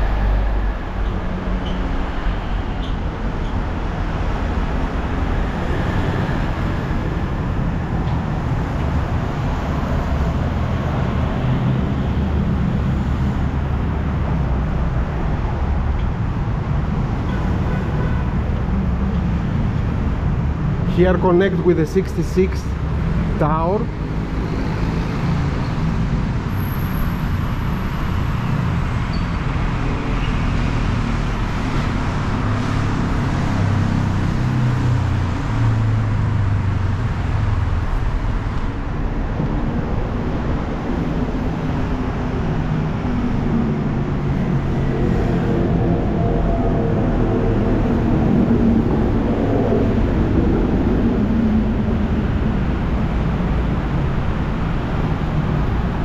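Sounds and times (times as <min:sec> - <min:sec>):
city road traffic: 0:00.0 - 0:56.0.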